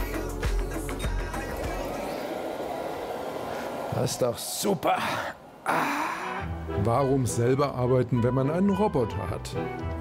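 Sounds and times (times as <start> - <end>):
background music with deep bass: 0.0 - 2.7.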